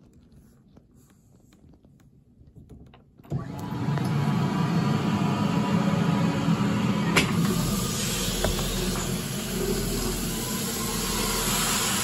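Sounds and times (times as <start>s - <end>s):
floor scrubber motors whirring: 3.3s - 12.0s.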